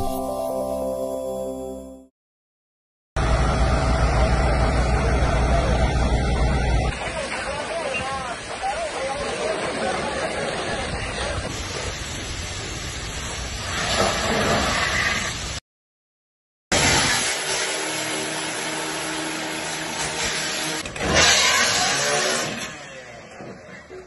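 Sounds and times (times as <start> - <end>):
steady rush of hoses: 3.4 - 15.6.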